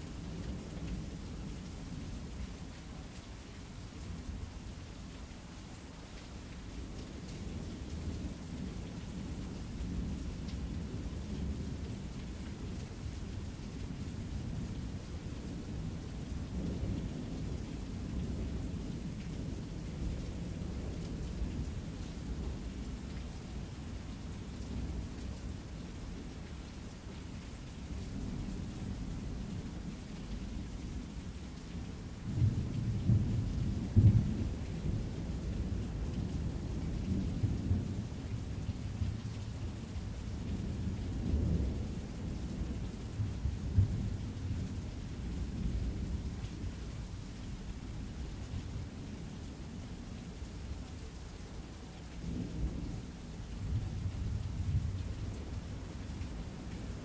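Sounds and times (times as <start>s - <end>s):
steady rain: 0.0s - 57.0s.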